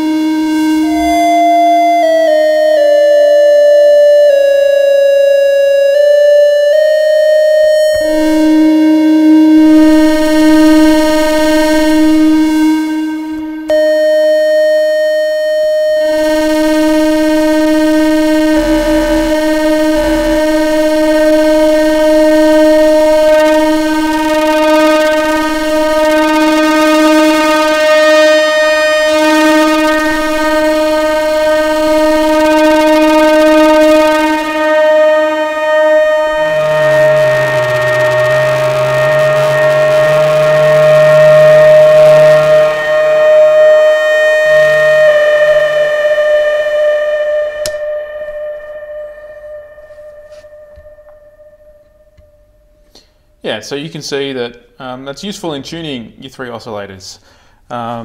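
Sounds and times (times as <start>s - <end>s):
synthesizer drone: 0.0s - 53.4s.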